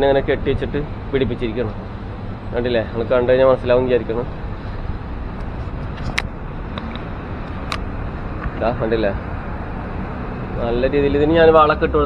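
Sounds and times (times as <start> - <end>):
distant road traffic rumble: 0.0 - 12.0.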